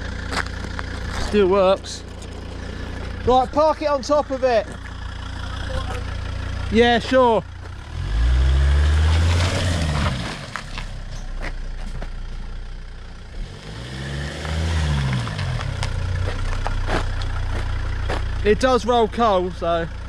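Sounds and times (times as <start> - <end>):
car engine running: 0.0 - 20.0.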